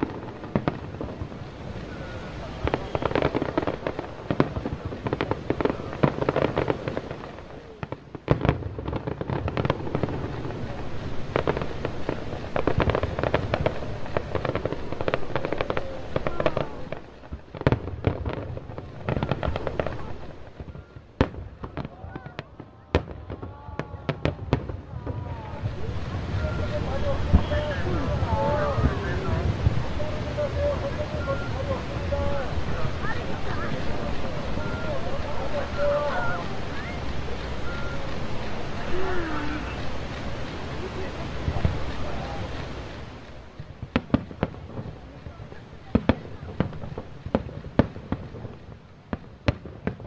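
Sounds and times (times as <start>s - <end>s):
fireworks booming and crackling: 0.0s - 50.0s
sharp firework pops: 0.0s - 50.0s.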